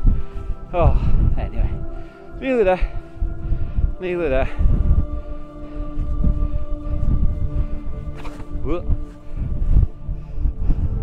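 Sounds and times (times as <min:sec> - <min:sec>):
soft sustained background music: 0:00.0 - 0:11.0
wind buffeting microphone: 0:00.0 - 0:11.0.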